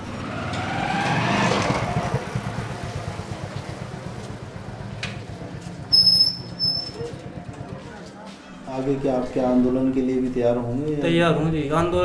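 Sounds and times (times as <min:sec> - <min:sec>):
motorcycle engine pulling away: 0:00.0 - 0:08.1.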